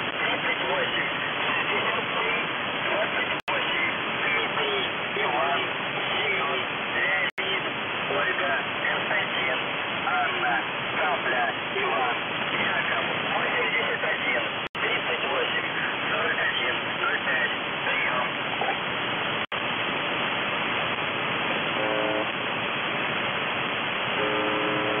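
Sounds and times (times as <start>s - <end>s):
radio static: 0.0s - 23.0s, 24.0s - 25.0s
radio buzz tone: 21.6s - 22.4s, 24.1s - 25.0s.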